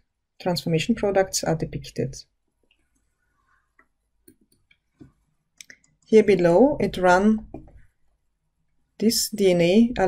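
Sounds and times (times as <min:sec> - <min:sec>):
computer mouse clicks: 0:03.8 - 0:06.1.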